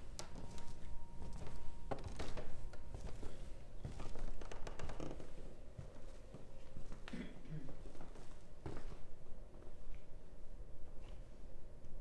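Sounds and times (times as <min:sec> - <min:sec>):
footsteps indoors: 0:00.0 - 0:12.0.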